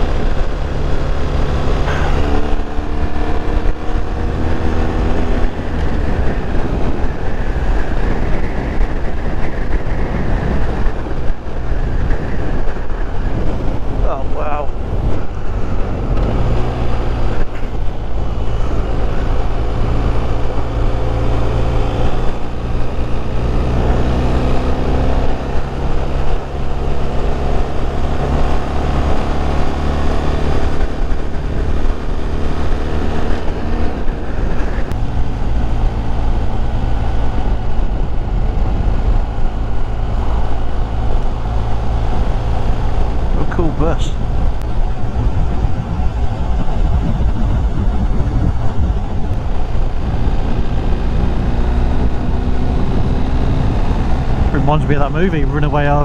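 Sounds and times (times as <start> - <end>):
motorcycle engine running: 0.0 - 56.0
wind rumble on microphone: 0.0 - 56.0.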